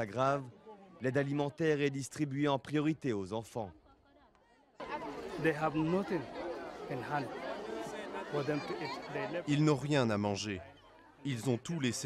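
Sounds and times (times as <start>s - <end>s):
chatter of voices: 3.9s - 12.0s.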